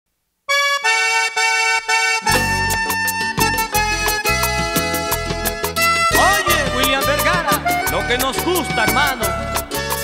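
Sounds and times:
accordion playing held notes: 0:00.5 - 0:10.0.

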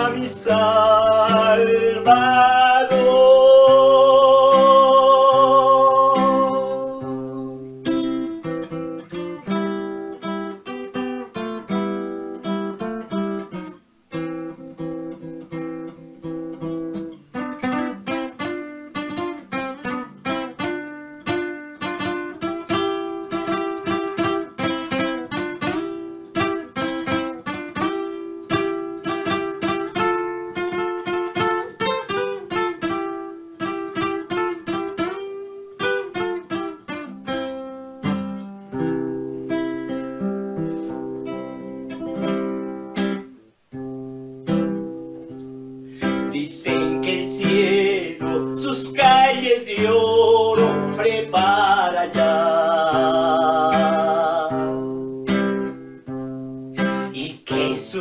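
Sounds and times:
man singing: 0:00.0 - 0:08.0, 0:46.0 - 0:55.0, 0:56.9 - 0:58.0
classical acoustic guitar: 0:00.0 - 0:58.0.

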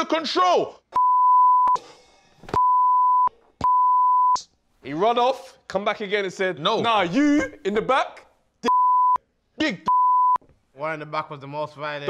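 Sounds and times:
censor bleep tone: 0:01.0 - 0:01.8, 0:02.6 - 0:04.4, 0:08.7 - 0:09.2, 0:09.9 - 0:10.4.

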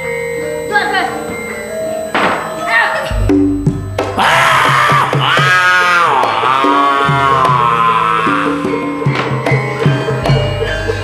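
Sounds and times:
metallophones playing repeated notes: 0:00.0 - 0:11.0
high voice singing wavering tones: 0:02.6 - 0:09.1
deep low gong stroke: 0:03.1 - 0:05.0.

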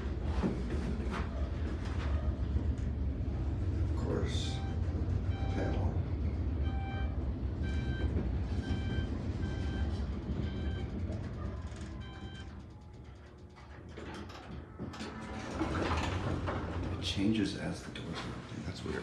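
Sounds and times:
elevator doors sliding open: 0:00.0 - 0:19.0
elevator low rumble: 0:00.0 - 0:19.0.

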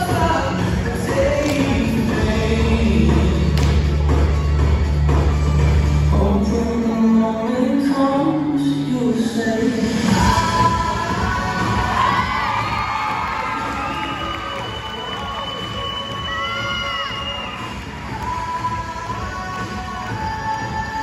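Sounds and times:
crowd cheering and shrieking: 0:11.6 - 0:18.3.

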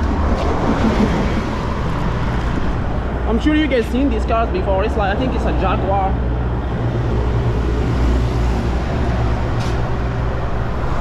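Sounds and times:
vehicles driving past: 0:00.0 - 0:11.0.

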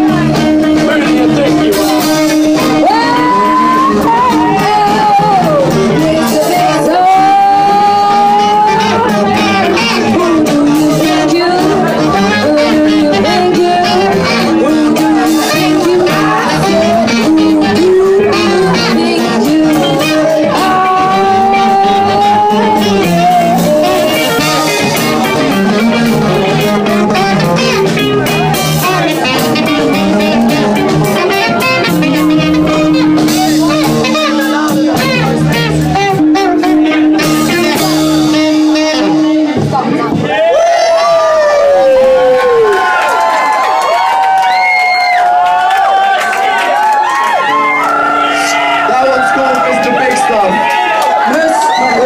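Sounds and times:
guitar melody: 0:00.0 - 0:43.0, 0:46.4 - 0:52.0
bass guitar: 0:00.0 - 0:52.0
drum kit: 0:00.0 - 0:52.0
live rap-funk band playing: 0:00.0 - 0:52.0.

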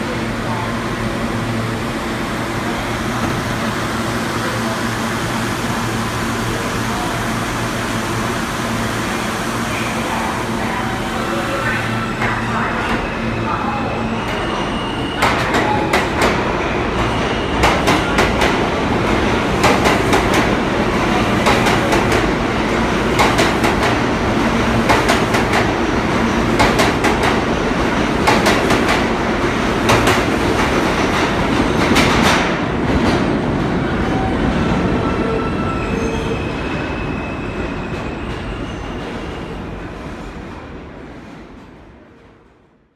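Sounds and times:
subway train rumble: 0:00.0 - 0:42.9.

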